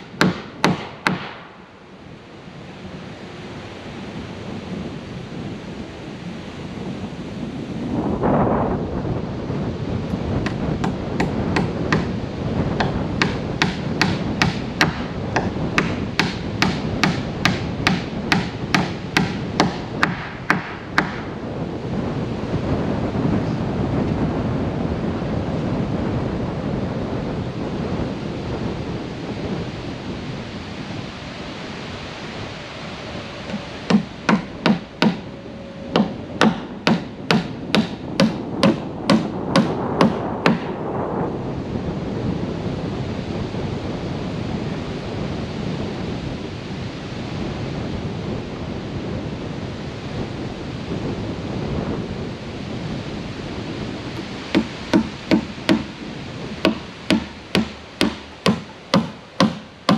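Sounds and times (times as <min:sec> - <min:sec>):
hammer nailing wooden boards: 0:00.0 - 0:01.5, 0:10.4 - 0:12.2, 0:12.8 - 0:21.3, 0:33.5 - 0:35.3, 0:36.0 - 0:40.8, 0:54.2 - 0:59.9
wind noise on microphone: 0:00.0 - 0:59.9.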